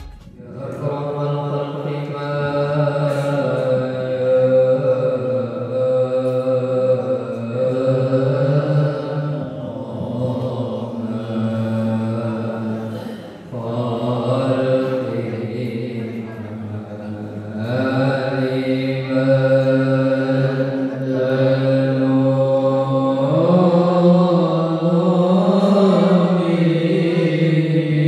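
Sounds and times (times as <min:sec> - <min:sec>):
men chanting devotional chant: 0:00.3 - 0:28.0.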